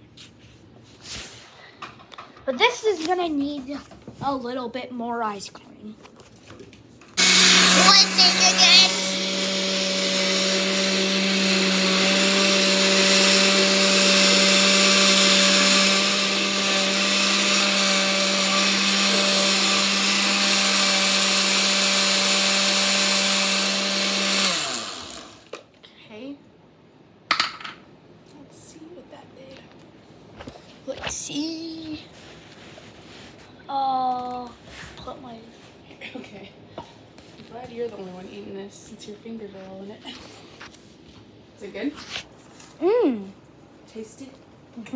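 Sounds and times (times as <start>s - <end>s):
blender motor winding down: 7.2s - 25.5s
blender running: 7.2s - 25.6s.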